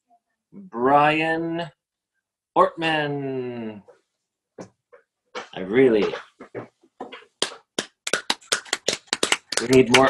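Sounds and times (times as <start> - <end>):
person clapping hands: 5.4 - 10.0.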